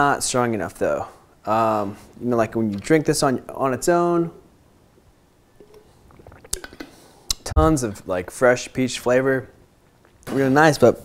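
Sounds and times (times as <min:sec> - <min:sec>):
swallowing: 0:05.6 - 0:07.5.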